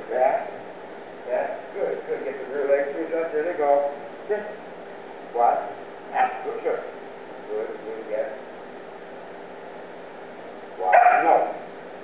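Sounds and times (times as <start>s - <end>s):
puppy barking: 6.1s - 6.5s, 10.8s - 11.6s.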